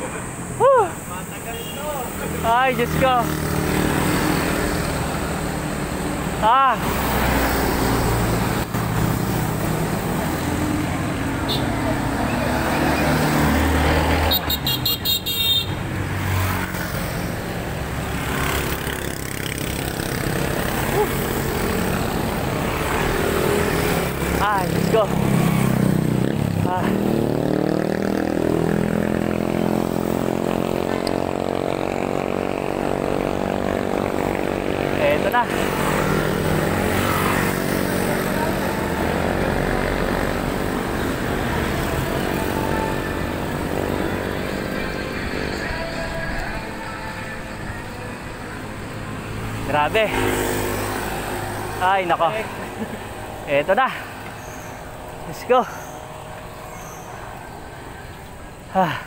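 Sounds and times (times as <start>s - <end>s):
voices: 0.0s - 7.6s, 18.8s - 59.0s.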